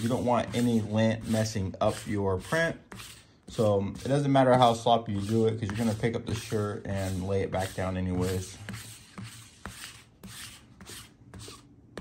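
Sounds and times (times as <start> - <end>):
lint roller rubbing on fabric: 0.0 - 11.7.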